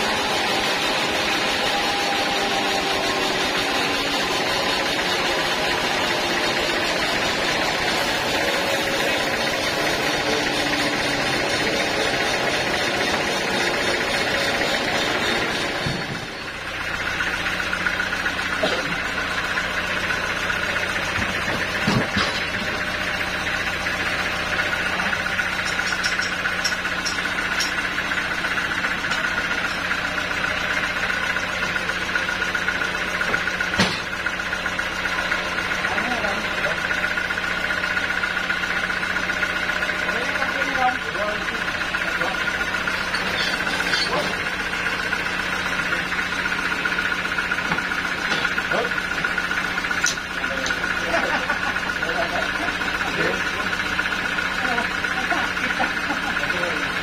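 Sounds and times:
band sawmill drone and whine: 0.0s - 57.0s.

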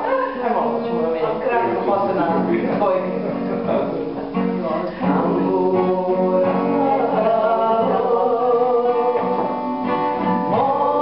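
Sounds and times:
plucked string instrument: 0.0s - 11.0s
woman singing: 4.6s - 11.0s.

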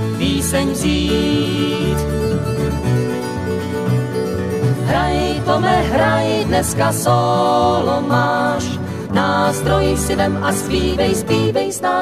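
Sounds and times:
acoustic guitar picked: 0.0s - 12.0s
electric bass guitar: 0.0s - 12.0s.

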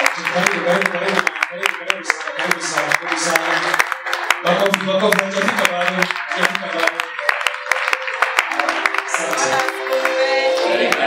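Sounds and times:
sharp hand claps: 0.0s - 10.2s
music with voices: 0.1s - 11.0s.

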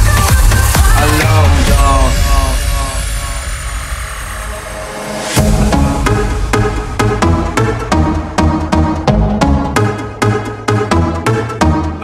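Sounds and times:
electronic dance music breakdown: 0.0s - 12.0s
low rumble: 1.0s - 10.0s.

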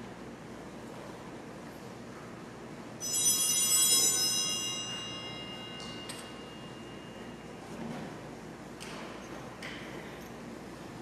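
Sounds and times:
small altar bells ringing: 3.0s - 7.9s.

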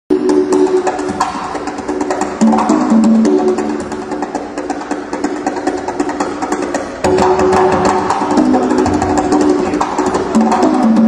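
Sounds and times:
congas played fast: 0.1s - 11.0s.

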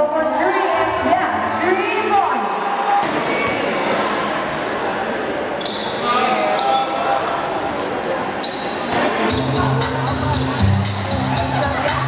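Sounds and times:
crowd and player voices: 0.0s - 12.0s
sneaker squeaks on court floor: 5.6s - 9.0s.

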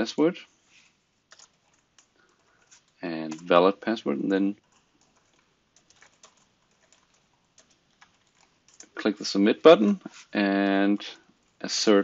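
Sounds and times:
computer keyboard typing: 1.3s - 3.6s, 4.4s - 9.2s.

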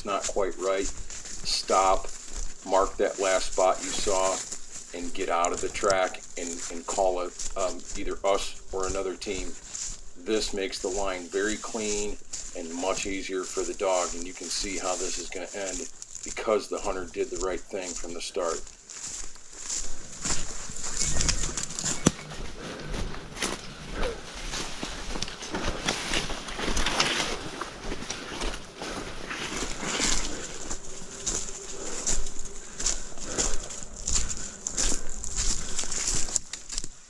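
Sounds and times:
footsteps through dry leaves: 0.0s - 37.0s
rustling undergrowth: 0.0s - 37.0s.

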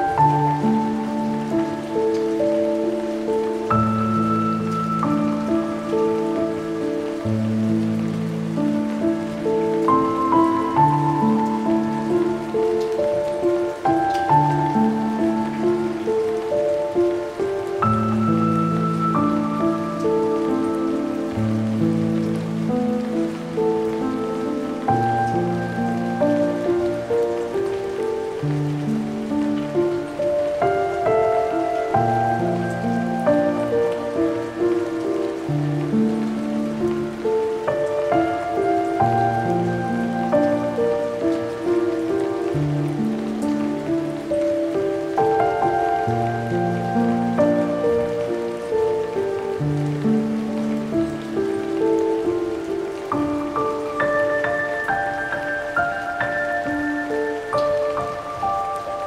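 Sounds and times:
rain: 0.0s - 59.0s
slow melancholic piano: 0.0s - 59.0s.

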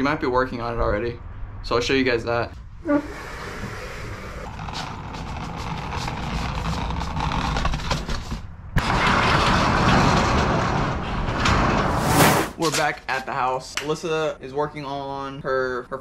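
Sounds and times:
dolly rumbling and rattling: 4.4s - 12.9s.

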